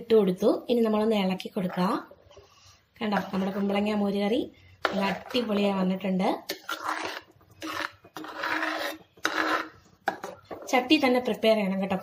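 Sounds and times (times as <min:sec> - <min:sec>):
ladle scraping pot: 0:01.5 - 0:04.2, 0:04.8 - 0:10.8.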